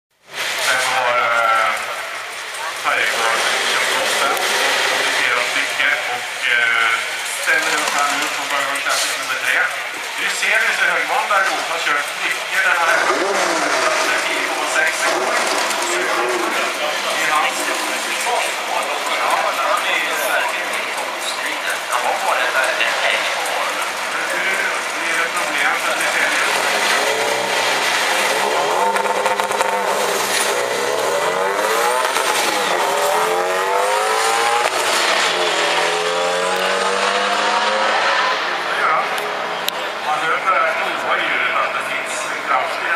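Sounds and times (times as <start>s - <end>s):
car engines revving and accelerating: 0.2s - 42.9s.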